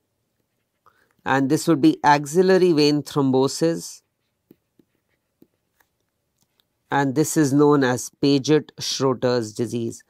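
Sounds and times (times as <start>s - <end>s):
stylus scratching on a tablet: 0.0s - 8.3s.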